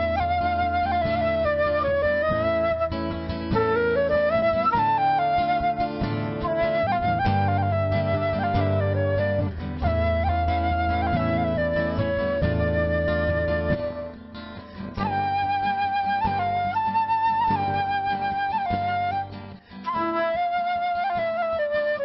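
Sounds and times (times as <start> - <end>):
flute melody: 0.0 - 22.0
strummed acoustic guitar: 0.0 - 22.0.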